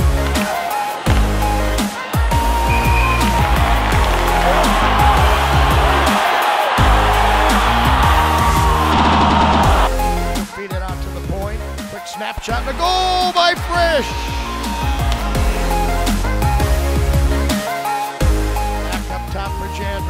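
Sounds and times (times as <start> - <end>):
heavy-bass electronic music: 0.0 - 20.0.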